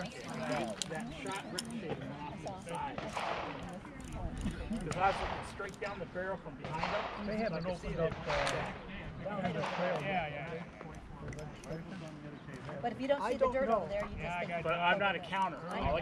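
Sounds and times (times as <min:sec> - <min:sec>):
people talking indistinctly: 0:00.0 - 0:16.0.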